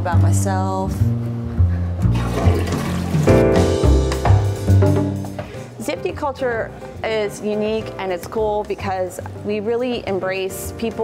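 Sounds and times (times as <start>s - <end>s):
background music with bass line: 0.0s - 5.8s
toilet flushing: 2.1s - 3.4s.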